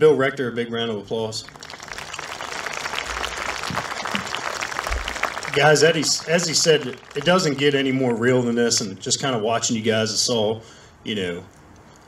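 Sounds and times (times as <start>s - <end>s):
crowd applauding: 1.4s - 8.9s.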